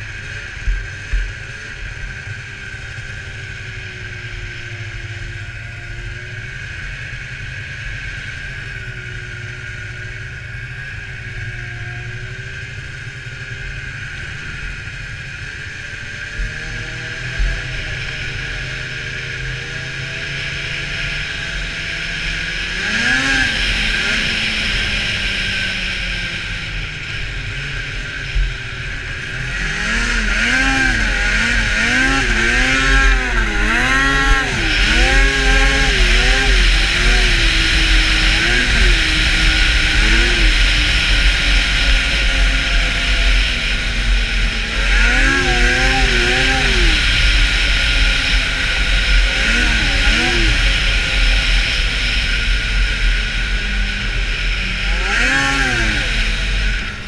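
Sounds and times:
snowmobile engine revving: 0.0 - 57.0.

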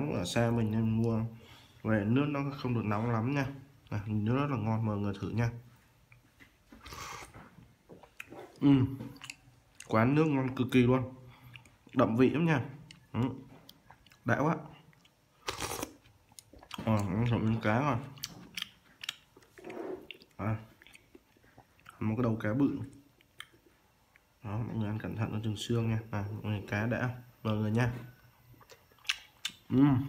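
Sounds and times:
person chewing: 6.0 - 10.4, 11.3 - 12.2, 12.8 - 24.4, 28.0 - 29.8
person slurping soup: 6.8 - 7.4, 15.4 - 16.0, 19.5 - 20.2.

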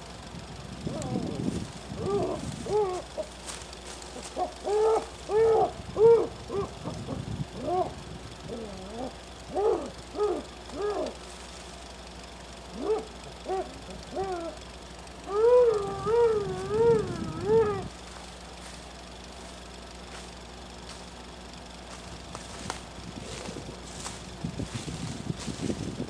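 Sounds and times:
high hooting calls: 0.8 - 25.8.

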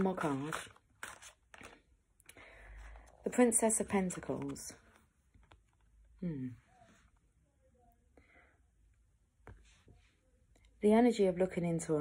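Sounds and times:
card rustling: 0.0 - 2.0.

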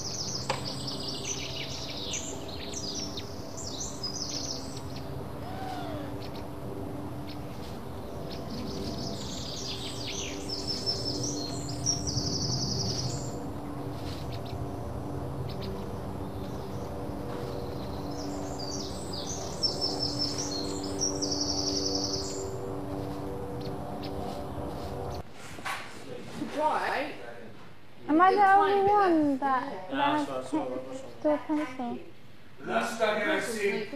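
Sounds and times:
songbird singing with trills: 0.0 - 6.5, 8.0 - 13.4, 17.7 - 22.5
steady low hum: 0.0 - 25.4.

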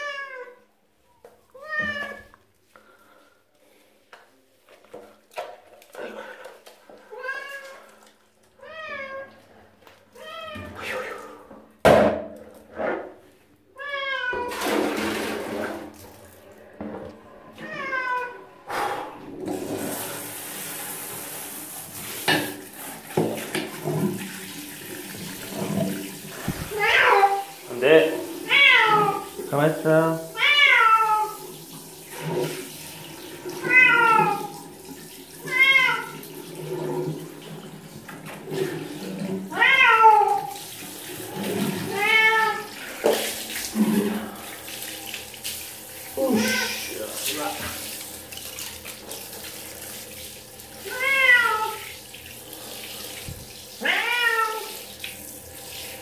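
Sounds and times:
cat meowing: 0.0 - 0.6, 1.5 - 2.3, 8.6 - 9.4, 10.2 - 11.2, 13.8 - 14.6, 17.6 - 18.5, 26.5 - 27.5, 28.4 - 29.3, 30.4 - 31.4, 33.6 - 34.6, 35.4 - 36.2, 39.5 - 40.6, 41.8 - 42.7, 46.2 - 46.9, 50.8 - 51.9, 53.8 - 54.8
water running from shower: 1.6 - 11.8, 14.2 - 16.8, 17.6 - 56.0.

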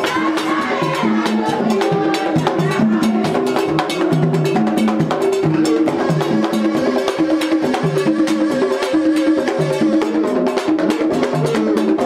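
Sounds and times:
hand drums beating fast rhythm: 0.0 - 12.0.

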